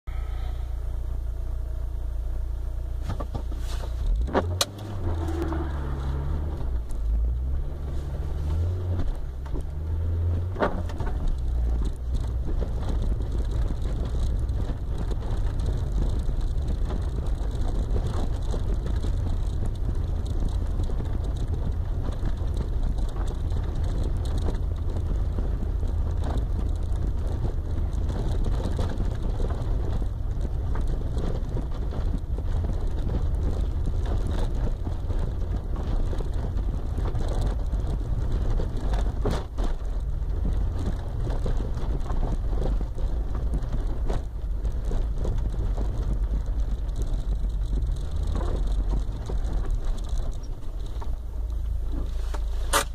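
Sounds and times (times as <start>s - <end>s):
car engine and tyre rumble: 0.0s - 52.9s.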